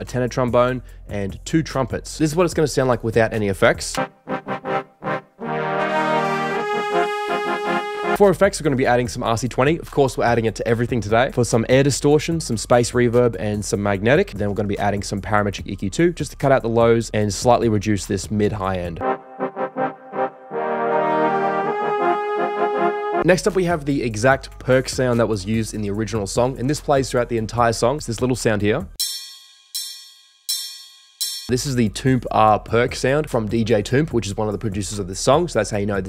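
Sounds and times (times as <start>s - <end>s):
brass section stabs and chords: 4.0s - 8.3s, 19.0s - 23.5s.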